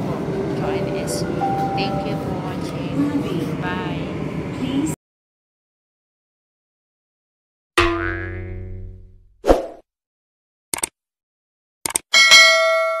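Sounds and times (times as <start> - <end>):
pitched tone: 1.0 - 2.4
quick double clicks: 10.7 - 11.0, 11.8 - 12.0
bell ding: 12.1 - 13.0.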